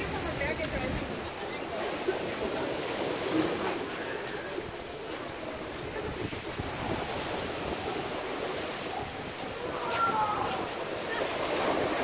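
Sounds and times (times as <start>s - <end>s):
wind buffeting microphone: 0.0s - 1.4s, 4.0s - 12.0s
ocean surf washing onto beach: 0.0s - 12.0s.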